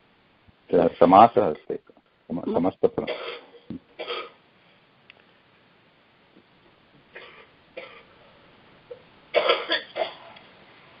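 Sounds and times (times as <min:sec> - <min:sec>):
person coughing: 0:02.5 - 0:04.4, 0:07.2 - 0:08.1, 0:09.4 - 0:10.3.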